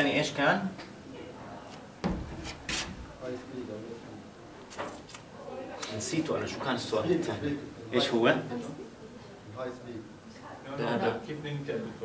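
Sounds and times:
marker writing on whiteboard: 2.3s - 3.0s.

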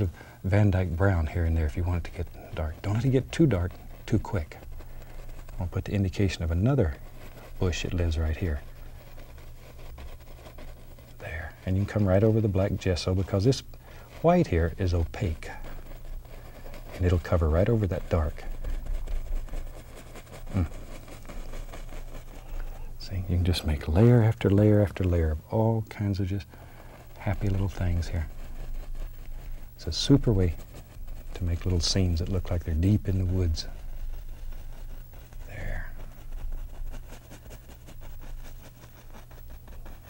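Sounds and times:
brush scratching on canvas: 0.0s - 40.0s
low electrical hum: 0.0s - 40.0s.

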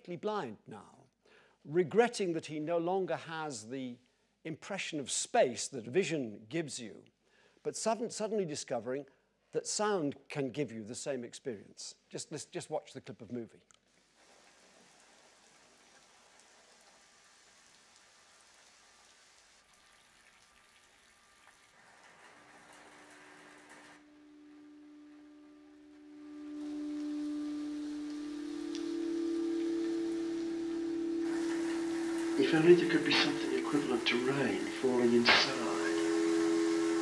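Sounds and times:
steady rain hiss: 13.9s - 37.0s
soft chord of low held notes: 24.0s - 37.0s.

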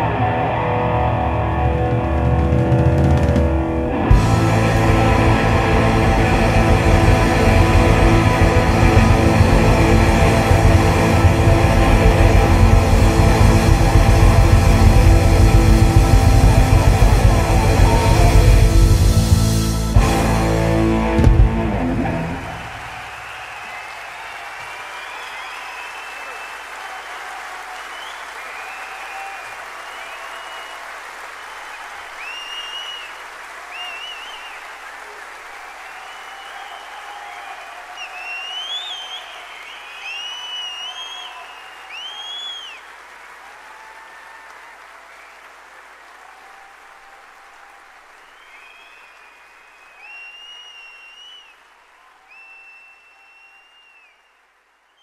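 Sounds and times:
crowd cheering: 0.0s - 55.0s
audience applauding: 1.6s - 55.0s
whistles: 22.4s - 34.8s, 35.6s - 43.0s, 45.1s - 45.5s, 48.2s - 55.0s.

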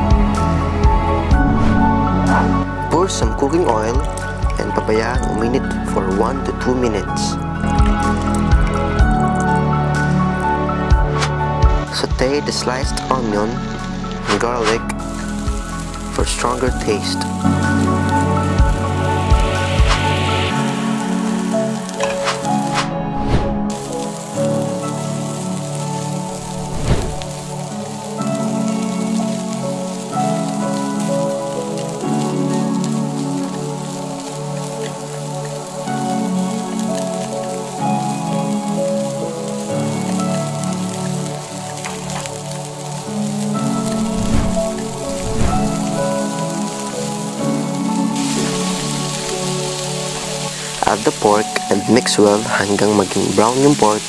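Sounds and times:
onion sizzling in hot oil: 0.0s - 11.9s, 13.2s - 54.0s
background music with held notes: 0.0s - 54.0s.

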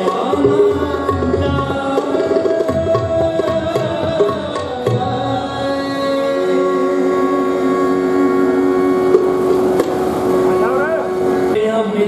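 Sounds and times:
harmonium sustained chord: 5.4s - 12.0s.

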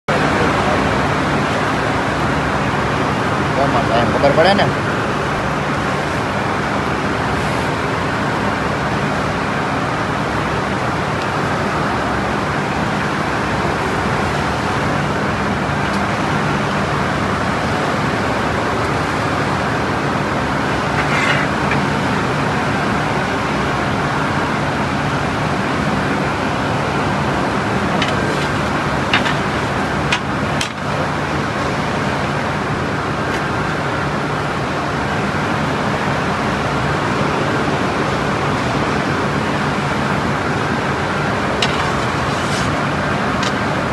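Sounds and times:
loud mechanical rumble: 0.1s - 43.9s.

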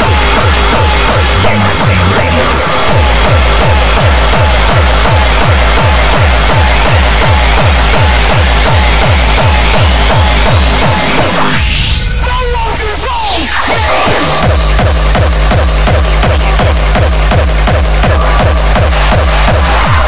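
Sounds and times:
fast hard kick drum: 0.0s - 20.0s
hardcore electronic music: 0.0s - 20.0s.

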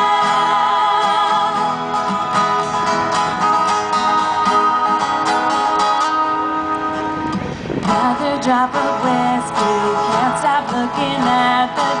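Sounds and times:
woman singing: 0.0s - 1.8s, 7.9s - 12.0s
acoustic guitars strumming: 0.0s - 12.0s
live band playing country-pop: 0.0s - 12.0s.

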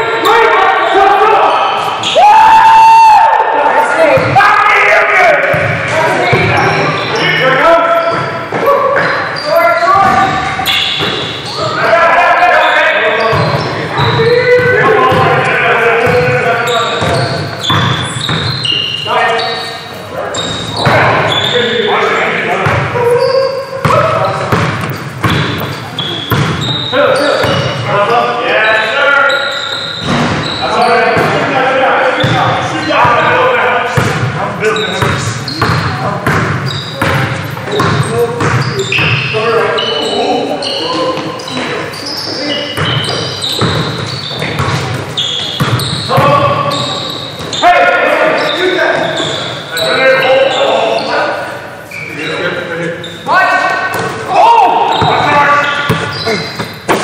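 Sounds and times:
players calling out: 0.0s - 57.0s
basketball bouncing: 5.4s - 6.7s, 13.3s - 18.6s, 22.6s - 22.9s, 23.8s - 27.9s, 30.0s - 31.5s, 32.2s - 33.3s, 33.9s - 34.4s, 35.0s - 39.3s, 42.8s - 46.8s, 54.9s - 57.0s.

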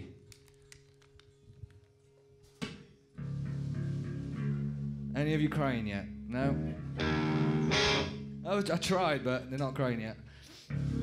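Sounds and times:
electric and bass guitar chord: 3.2s - 9.3s, 10.7s - 11.0s.

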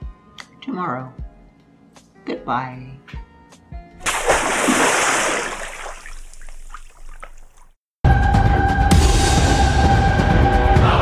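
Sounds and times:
water splash: 4.0s - 7.8s.

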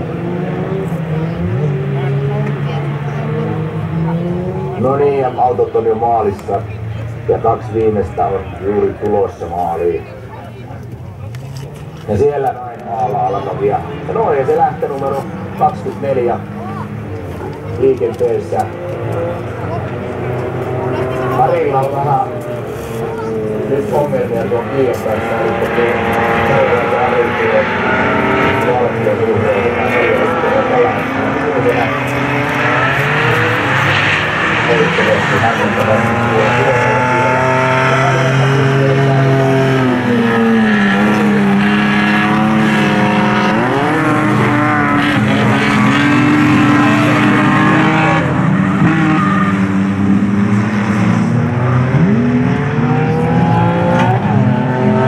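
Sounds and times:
race car engines revving: 0.0s - 55.0s.

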